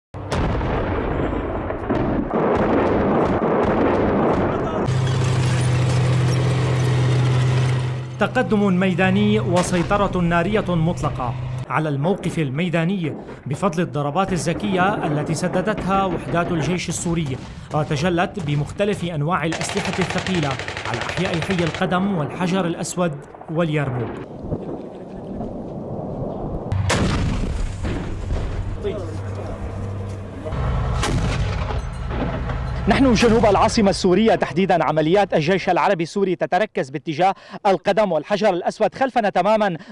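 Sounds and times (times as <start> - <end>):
low rumble of combat: 0.2 - 34.2
tank engine droning: 4.8 - 11.7, 27.8 - 33.7
sharp gunshot: 26.7 - 28.7, 31.0 - 31.8.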